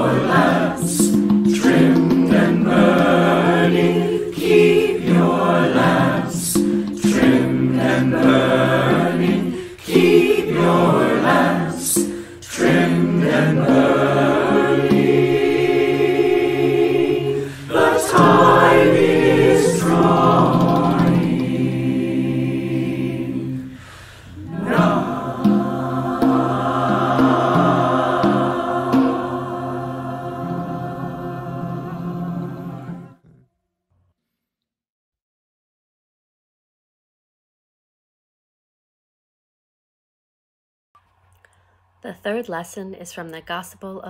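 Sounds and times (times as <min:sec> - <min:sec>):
choir singing a carol: 0:00.0 - 0:33.2.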